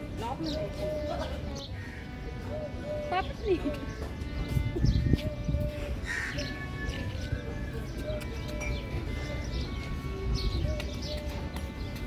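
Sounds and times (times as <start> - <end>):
background music sustained notes: 0.0 - 12.0
bird harsh call: 0.4 - 12.0.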